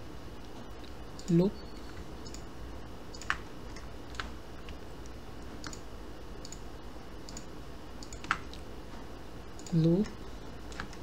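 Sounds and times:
low steady hum: 0:00.0 - 0:11.0
computer mouse clicks: 0:02.2 - 0:02.5, 0:03.1 - 0:05.8, 0:06.4 - 0:08.6, 0:09.5 - 0:11.0.

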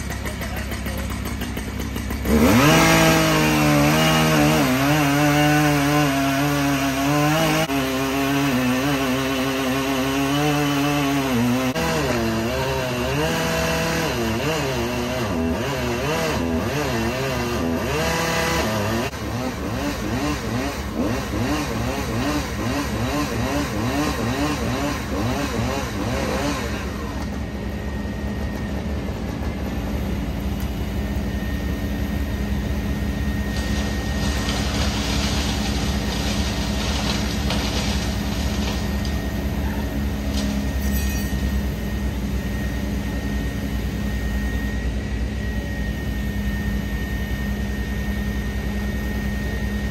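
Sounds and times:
chainsaw cutting through trunk: 0:00.0 - 0:27.3, 0:32.9 - 0:42.5
low engine drone: 0:18.8 - 0:49.9.

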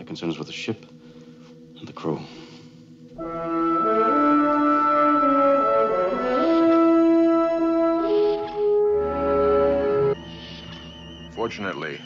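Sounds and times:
orchestral brass music: 0:03.2 - 0:10.2.

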